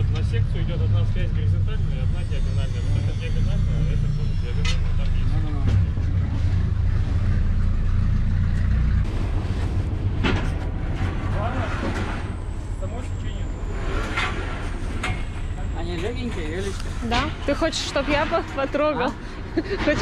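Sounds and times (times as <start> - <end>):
steady low rumble: 0.0 - 20.0
scaffolding frames clanking: 8.4 - 20.0.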